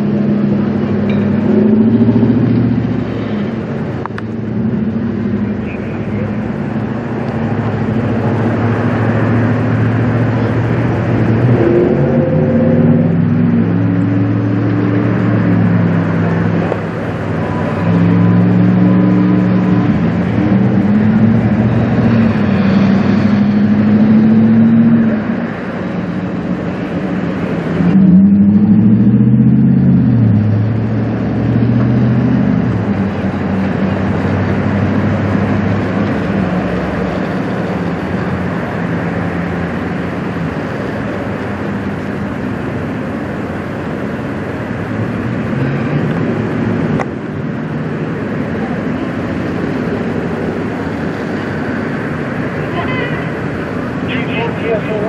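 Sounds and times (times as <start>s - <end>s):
diesel engines running hard: 0.0s - 55.0s.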